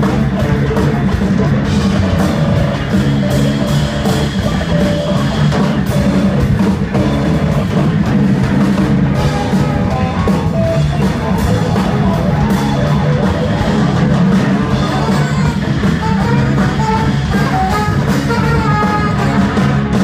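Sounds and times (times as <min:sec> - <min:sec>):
bass guitar: 0:00.0 - 0:20.0
electric guitar: 0:00.0 - 0:20.0
saxophone: 0:09.2 - 0:20.0.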